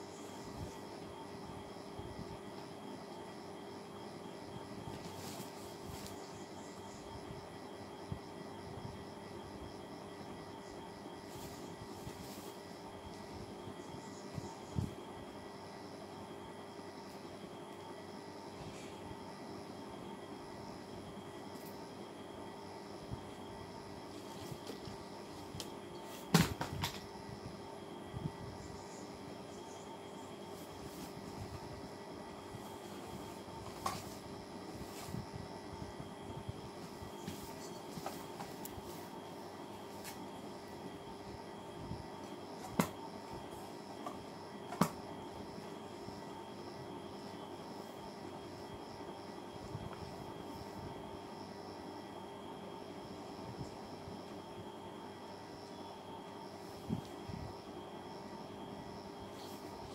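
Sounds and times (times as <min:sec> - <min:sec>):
steady mechanical hum: 0:00.0 - 0:59.9.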